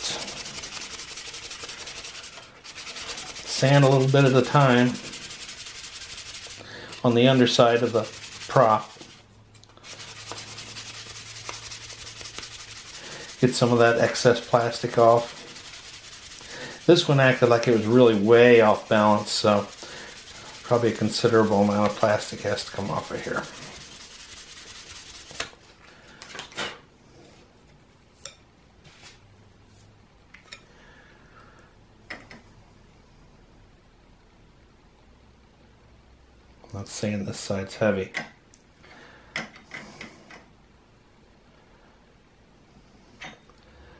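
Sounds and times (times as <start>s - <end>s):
sandpaper rubbing plastic propeller: 0.0s - 25.5s.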